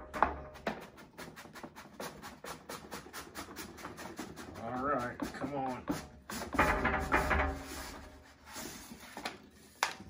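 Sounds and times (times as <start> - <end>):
cardboard rubbing and squeaking: 0.7 - 9.6.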